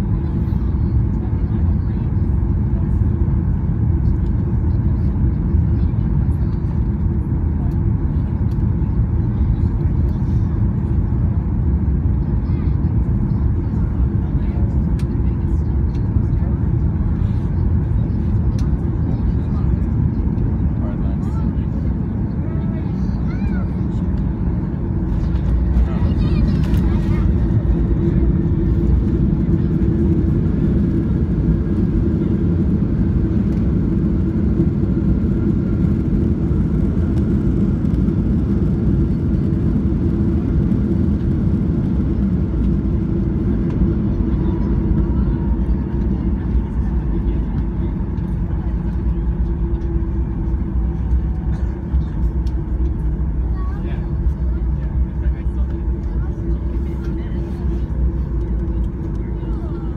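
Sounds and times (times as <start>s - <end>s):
airplane landing rumble: 0.0s - 59.9s.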